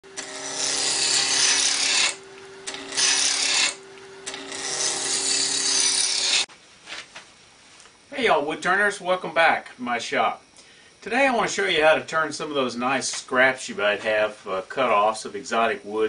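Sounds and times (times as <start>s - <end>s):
lathe humming: 0.0s - 6.5s
turning tool cutting wood: 0.0s - 6.5s.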